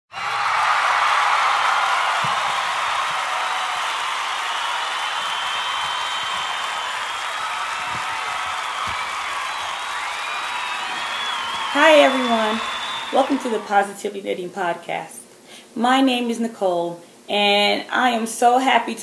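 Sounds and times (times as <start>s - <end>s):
crowd applauding and cheering: 0.1s - 14.0s.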